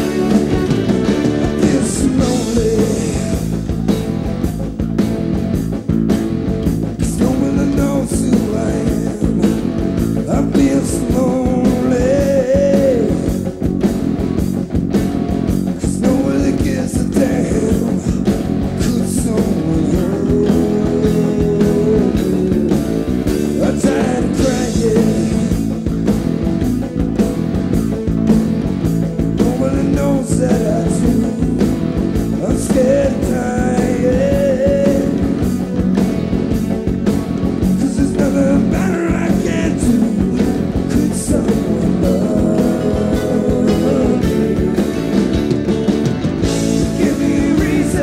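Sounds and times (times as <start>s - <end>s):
male lead vocal: 0.0s - 3.7s, 7.0s - 13.6s, 15.7s - 26.1s, 29.2s - 36.1s, 37.6s - 45.4s, 46.4s - 48.0s
rock band playing live: 0.0s - 48.0s.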